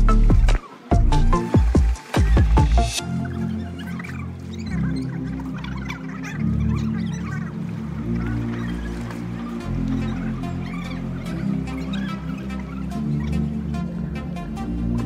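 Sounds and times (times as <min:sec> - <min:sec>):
electronic music with deep bass: 0:00.0 - 0:15.0.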